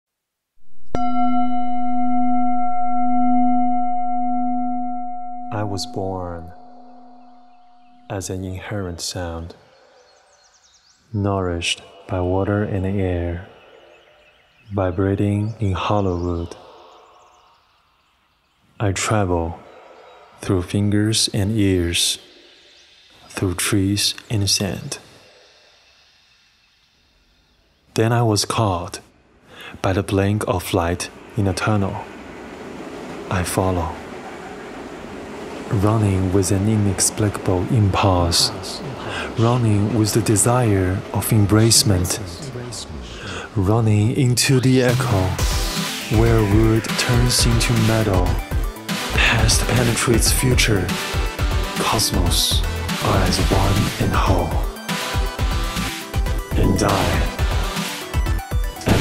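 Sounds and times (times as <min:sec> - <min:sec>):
bell-like metal ringing: 0:01.0 - 0:08.1
man speaking: 0:05.5 - 0:06.6, 0:08.1 - 0:09.6, 0:11.2 - 0:13.6, 0:14.7 - 0:16.8, 0:18.8 - 0:19.7, 0:20.4 - 0:22.2, 0:23.3 - 0:25.0, 0:28.0 - 0:32.1, 0:33.3 - 0:34.0, 0:35.7 - 0:45.5, 0:46.1 - 0:48.4, 0:49.1 - 0:51.0, 0:51.8 - 0:54.7, 0:56.5 - 0:57.4
faint hiss: 0:15.6 - 0:46.3
low hum: 0:28.7 - 0:48.4.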